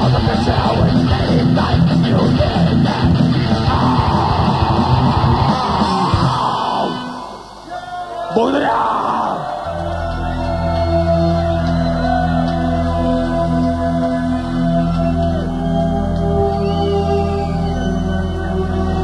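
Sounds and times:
heavy metal band playing: 0:00.0 - 0:15.9
person shouting vocals: 0:07.7 - 0:09.6.

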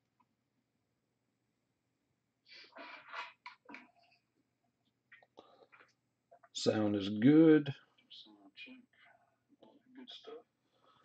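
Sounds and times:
faint whispered speech: 0:08.0 - 0:10.6.

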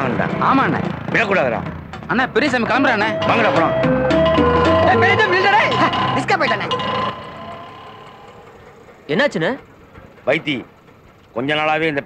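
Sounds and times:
rickshaw engine idling: 0:00.0 - 0:12.0
street background noise: 0:00.0 - 0:12.0.

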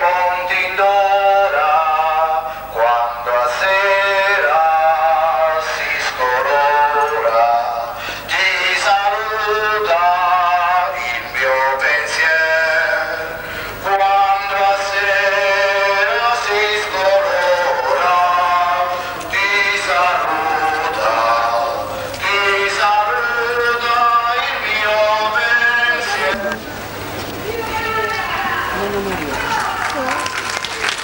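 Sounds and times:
voices singing a hymn: 0:00.0 - 0:26.6.

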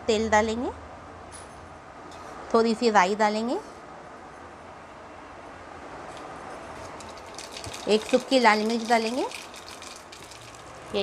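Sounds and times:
seeds sizzling in hot oil: 0:07.0 - 0:11.0.

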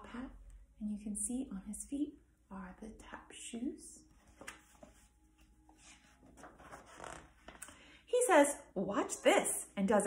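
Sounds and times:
paper pages rustling: 0:04.2 - 0:07.6.

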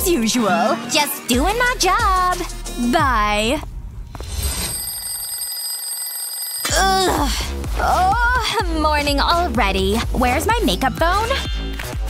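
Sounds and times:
twin-bell alarm clock ringing: 0:04.3 - 0:06.7.

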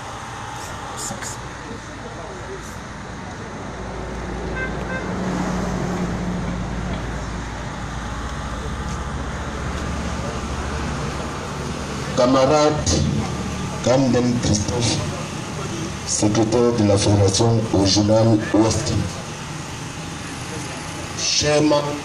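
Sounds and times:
crowd chatter: 0:00.0 - 0:22.0
vehicle engine running: 0:00.0 - 0:22.0.

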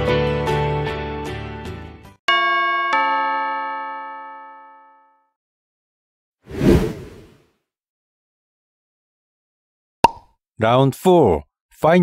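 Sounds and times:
two-note doorbell chime: 0:02.3 - 0:05.2.

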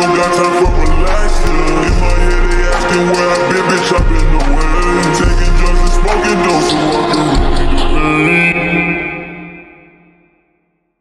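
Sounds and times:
slowed rap song drums and bass: 0:00.0 - 0:08.5.

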